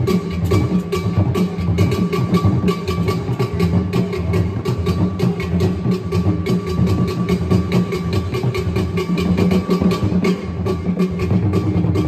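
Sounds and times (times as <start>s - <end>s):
drum ensemble playing: 0.0s - 12.0s.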